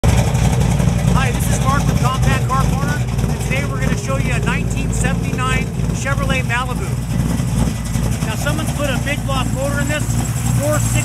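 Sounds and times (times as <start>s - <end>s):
low rumble: 0.0s - 11.0s
man talking: 1.1s - 7.0s, 8.2s - 11.0s.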